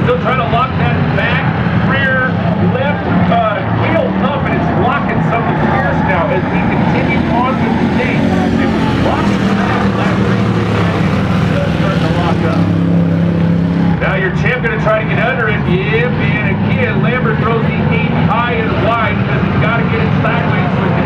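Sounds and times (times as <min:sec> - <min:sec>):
engines droning: 0:00.0 - 0:21.0.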